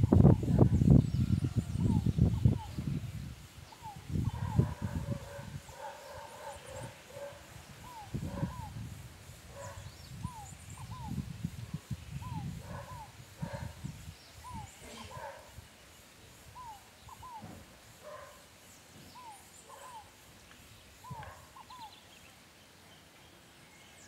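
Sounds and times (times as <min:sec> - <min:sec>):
faint bird chirps: 0:09.6 - 0:24.0.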